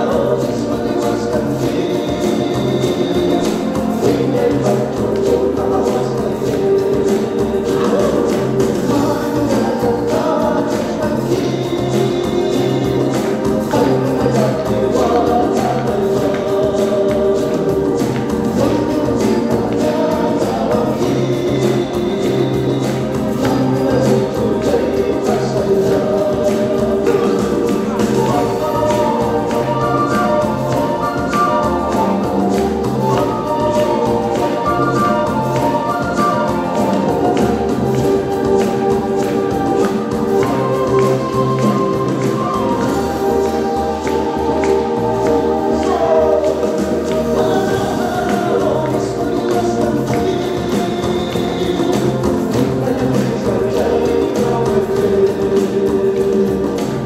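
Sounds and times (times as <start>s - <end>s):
steady bass line: 0.0s - 57.0s
steady beat: 0.0s - 57.0s
voices singing together: 0.0s - 57.0s
wind instruments: 0.0s - 57.0s
wooden flutes playing melody: 0.0s - 57.0s.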